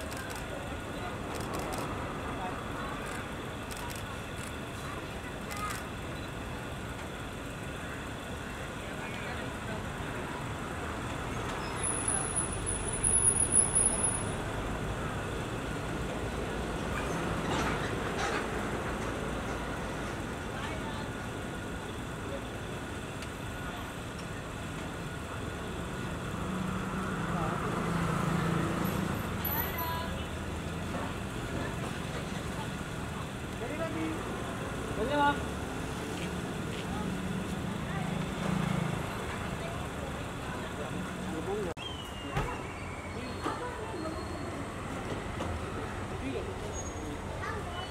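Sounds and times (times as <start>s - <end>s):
traffic noise: 0.0s - 47.9s
thin high whistle: 41.8s - 44.6s.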